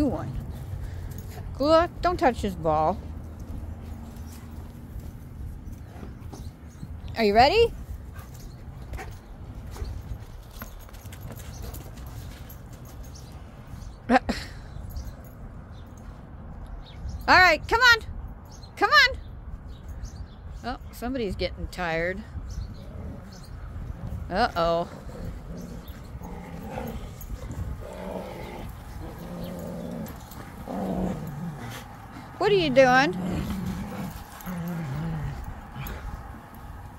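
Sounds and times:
wind rumble on microphone: 0:13.2 - 0:36.9
dogs play-growling: 0:22.6 - 0:36.9.

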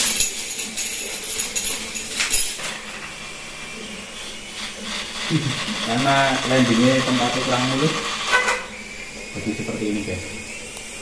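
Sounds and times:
toy motor whirring: 0:04.5 - 0:08.6.

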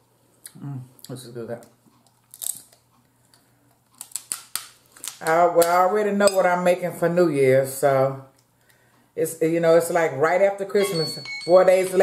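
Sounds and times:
crab shell cracking: 0:02.1 - 0:05.8.

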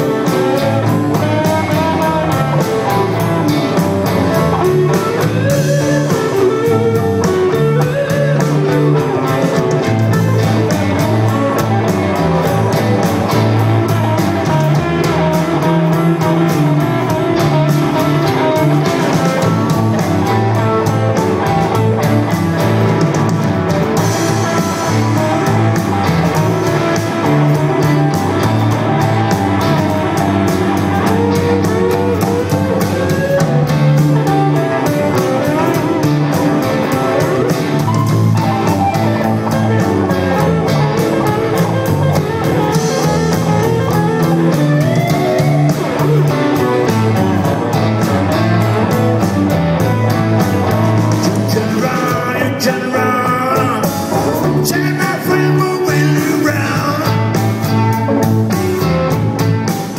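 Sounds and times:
live blues-rock band: 0:00.0 - 0:59.9.

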